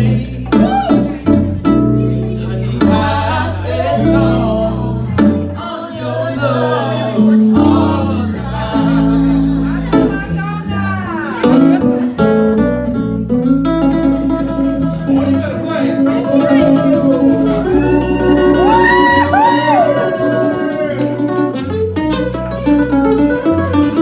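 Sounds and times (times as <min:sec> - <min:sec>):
man singing: 0:00.0 - 0:01.3, 0:02.2 - 0:11.4
acoustic guitars: 0:00.0 - 0:24.0
guitar lead line with bending notes: 0:00.0 - 0:24.0.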